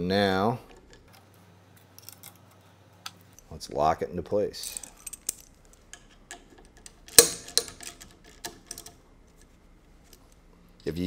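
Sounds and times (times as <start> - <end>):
sharp metallic clicks: 4.7 - 9.0.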